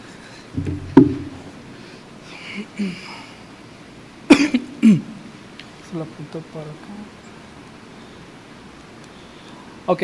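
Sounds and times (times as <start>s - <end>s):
person coughing: 4.3s - 5.0s.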